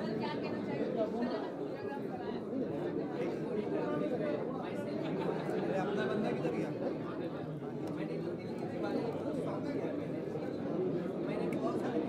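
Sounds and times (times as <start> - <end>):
babble of overlapping voices: 0.0 - 12.0.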